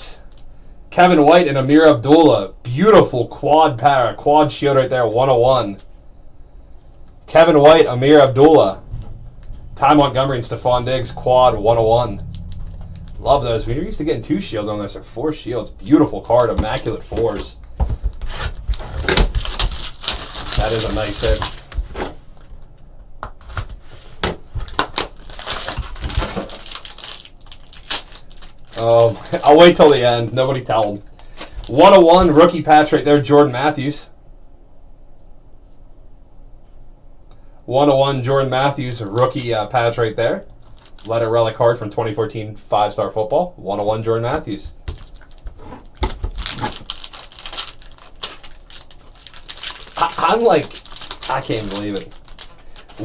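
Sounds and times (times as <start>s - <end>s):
foil wrapper crinkling and tearing: 18.2s - 21.8s, 24.6s - 32.0s, 40.6s - 41.2s, 44.8s - 53.0s.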